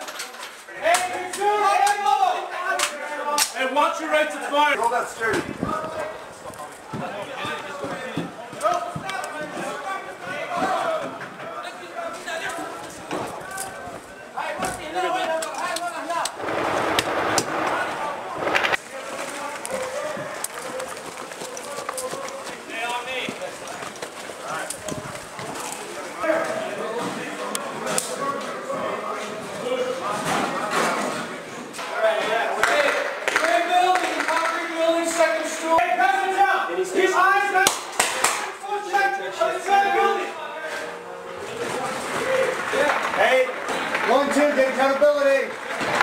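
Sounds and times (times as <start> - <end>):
men calling and shouting: 0.4 - 46.0
sharp impacts: 16.3 - 19.6.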